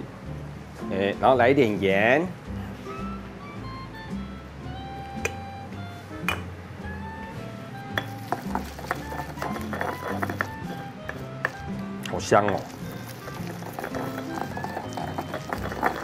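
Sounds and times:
background music: 0:00.0 - 0:16.0
pestle pounding in stone mortar: 0:08.0 - 0:11.6, 0:12.4 - 0:16.0.

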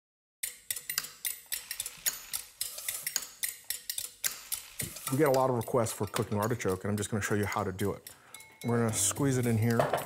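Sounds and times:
utensils and dishes clinking: 0:04.8 - 0:10.0.

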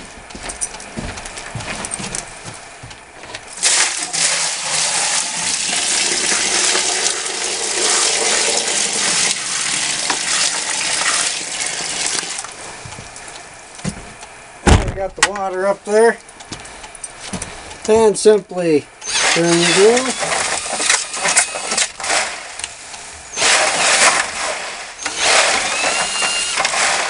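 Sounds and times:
water pouring into bucket: 0:03.6 - 0:12.5.

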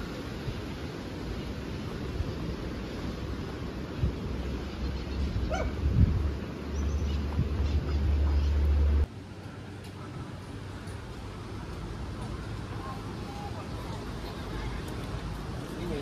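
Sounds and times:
outdoor low rumble: 0:01.8 - 0:15.7
dog barking: 0:05.5 - 0:05.8.

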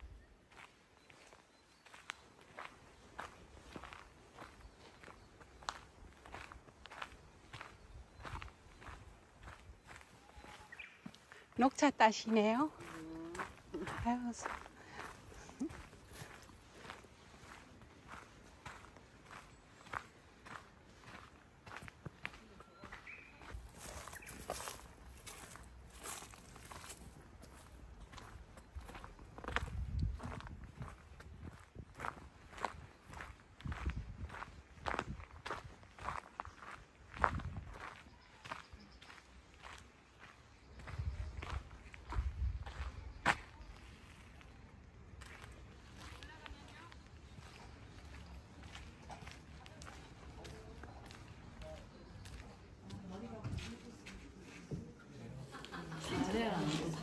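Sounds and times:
footsteps on gravel: 0:00.5 - 0:54.4.

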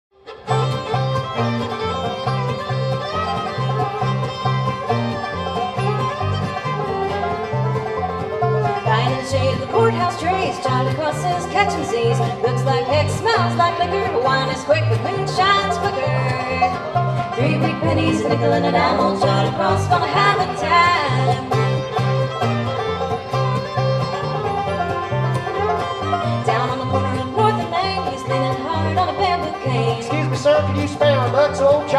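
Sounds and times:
banjo: 0:00.1 - 0:31.9
bluegrass string band playing: 0:00.1 - 0:31.9
fiddle: 0:00.1 - 0:31.9
mandolin: 0:00.1 - 0:31.9
dobro: 0:00.2 - 0:31.9
acoustic guitar: 0:00.3 - 0:31.9
upright bass: 0:00.4 - 0:31.9.

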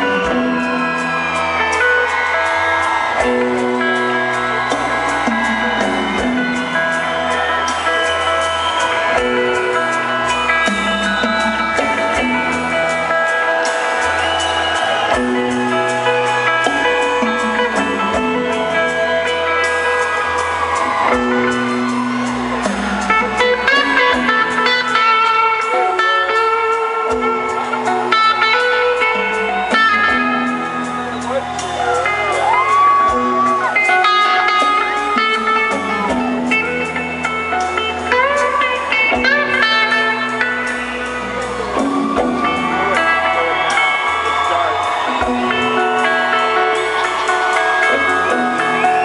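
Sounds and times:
electric guitars bending notes: 0:00.0 - 0:49.0.

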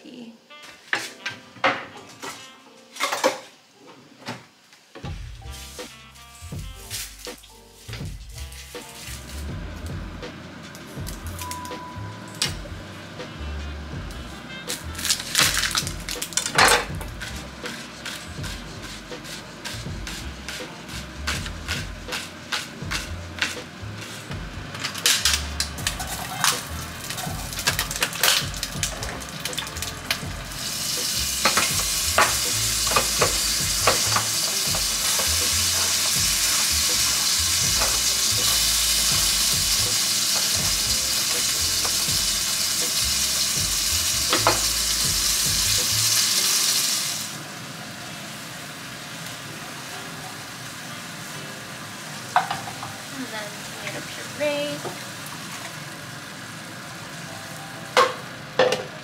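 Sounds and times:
tomatoes sizzling in oil: 0:05.0 - 0:59.0
knife chopping on cutting board: 0:16.9 - 0:23.6.

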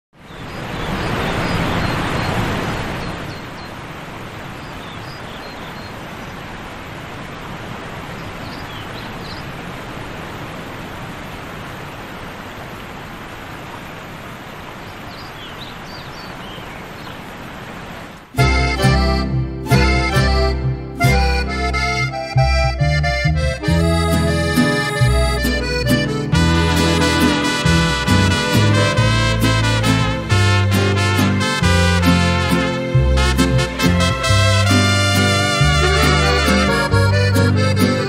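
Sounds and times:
ocean surf rushing: 0:00.4 - 0:05.3, 0:23.4 - 0:38.0.

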